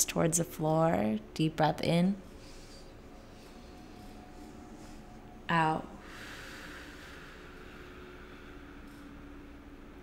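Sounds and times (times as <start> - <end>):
faint steady hum: 0.0 - 10.0
breathy exhale: 5.9 - 9.5.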